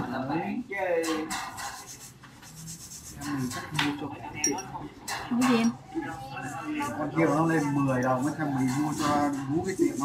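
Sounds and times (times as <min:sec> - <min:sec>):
brush rubbing on fingernail: 0:01.6 - 0:03.7, 0:06.8 - 0:10.0.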